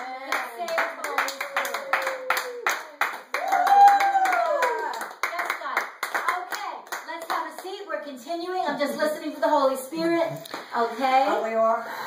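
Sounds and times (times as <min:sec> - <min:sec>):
people clapping in rhythm: 0:00.0 - 0:07.9.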